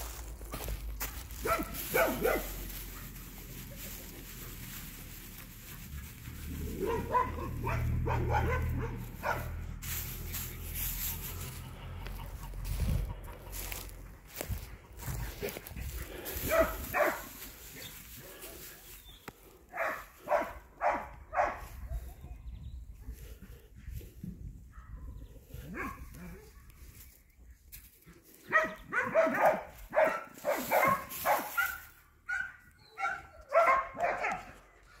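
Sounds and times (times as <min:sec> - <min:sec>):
dog barking: 0:01.4 - 0:02.6, 0:06.7 - 0:09.6, 0:16.4 - 0:17.3, 0:19.7 - 0:22.0, 0:25.7 - 0:26.6, 0:28.5 - 0:35.0.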